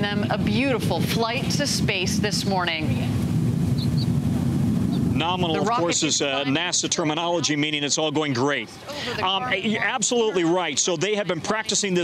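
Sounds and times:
rocket engine rumble: 0:00.0 - 0:08.1.

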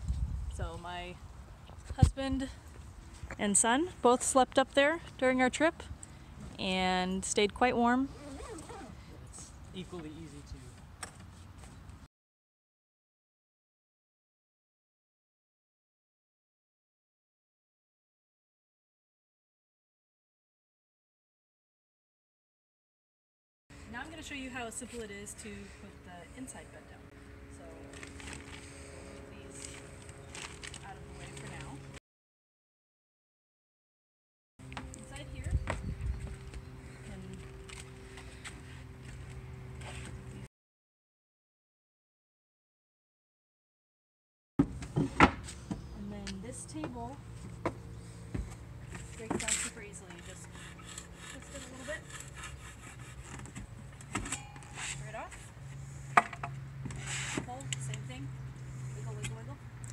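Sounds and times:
steady low hum: 0:34.6 - 0:40.5, 0:44.6 - 0:59.9
tabletop scraping: 0:56.9 - 0:57.6.

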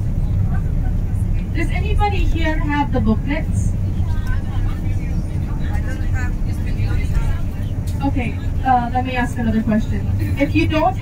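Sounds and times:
bus engine rumble: 0:00.0 - 0:11.0
passengers' voices: 0:00.0 - 0:11.0
road noise: 0:00.0 - 0:11.0.

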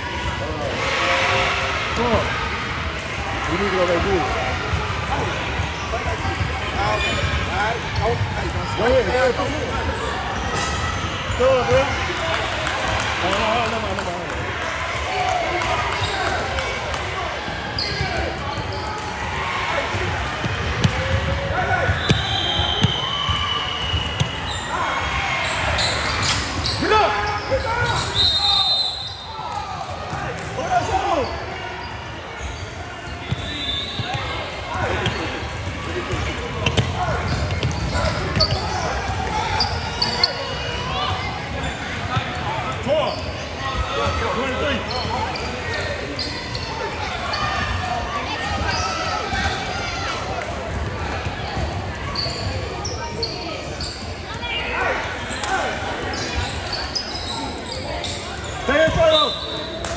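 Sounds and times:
people shouting and talking: 0:00.0 - 0:59.9
shoe squeaks: 0:17.8 - 0:18.9, 0:25.4 - 0:29.3, 0:30.8 - 0:34.3, 0:36.7 - 0:38.9, 0:39.5 - 0:43.4, 0:44.8 - 0:47.6, 0:51.4 - 0:54.2, 0:56.1 - 0:59.8.

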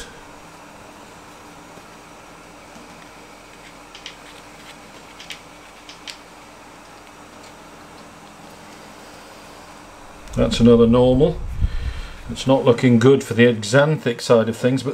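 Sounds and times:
low room hum: 0:00.0 - 0:14.9.

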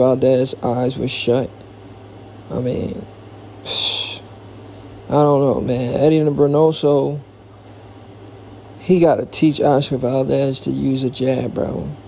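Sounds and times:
low electrical hum: 0:00.0 - 0:12.0
man exhaling breathily: 0:03.6 - 0:04.2.

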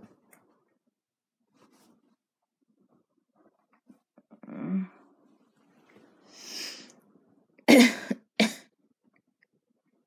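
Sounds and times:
person coughing: 0:07.7 - 0:08.7.

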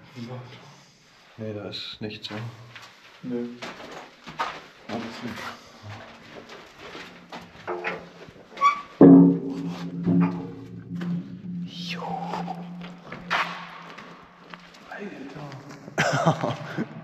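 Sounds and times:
heavy steel door clanging: 0:08.7 - 0:14.4
low metallic ringing: 0:09.0 - 0:14.9.

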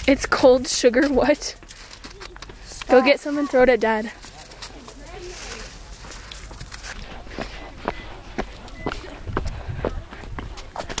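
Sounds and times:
footsteps on snow and pavement: 0:00.0 - 0:11.0
wind rumble on microphone: 0:06.4 - 0:11.0.

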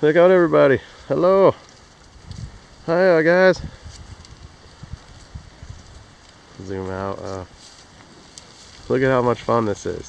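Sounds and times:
wind on microphone: 0:01.7 - 0:10.0.

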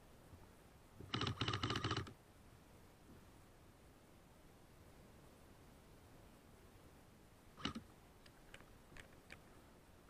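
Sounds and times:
airsoft rifle rapid clicks: 0:01.1 - 0:02.2.

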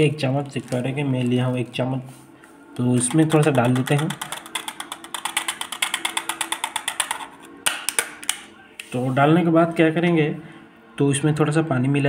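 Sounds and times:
spoon clicking in plastic cup: 0:03.0 - 0:08.4.

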